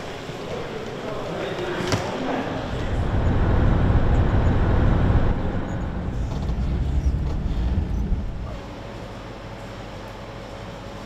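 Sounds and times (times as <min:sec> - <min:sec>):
vehicle cabin road rumble: 0:02.6 - 0:09.2.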